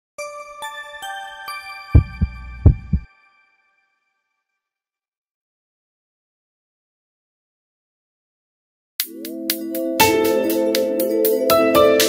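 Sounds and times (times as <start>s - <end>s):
deep bass thumps: 2.0s - 3.0s.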